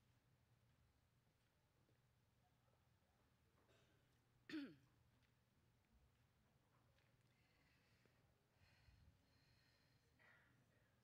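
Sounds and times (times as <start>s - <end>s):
person clearing throat: 4.5s - 4.8s.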